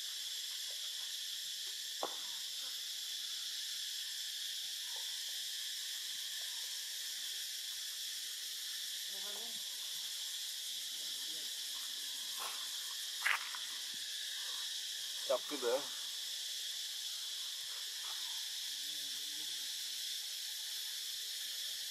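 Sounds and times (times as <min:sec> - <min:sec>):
high-pitched insect chorus: 0:00.0 - 0:21.9.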